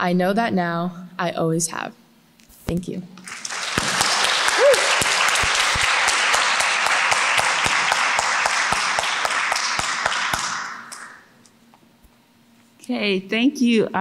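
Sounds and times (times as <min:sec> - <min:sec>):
audience applauding: 0:03.2 - 0:11.3.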